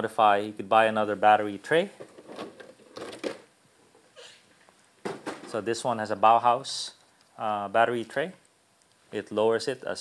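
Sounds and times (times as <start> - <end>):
plastic body rattling and clicking: 2.0 - 3.5.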